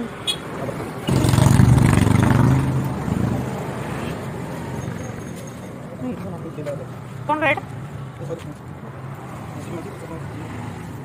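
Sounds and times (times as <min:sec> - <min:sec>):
vehicle engine passing by: 0:00.6 - 0:05.2.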